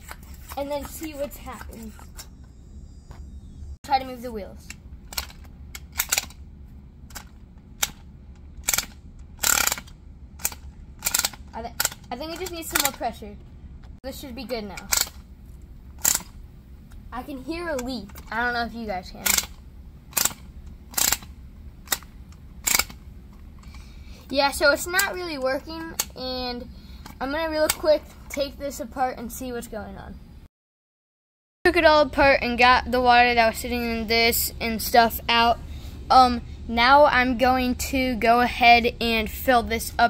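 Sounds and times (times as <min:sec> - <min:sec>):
toy engine clicking and puffing: 0:05.1 - 0:06.4, 0:08.6 - 0:13.1, 0:14.7 - 0:15.2, 0:16.0 - 0:16.4, 0:19.2 - 0:23.0, 0:23.6 - 0:26.1.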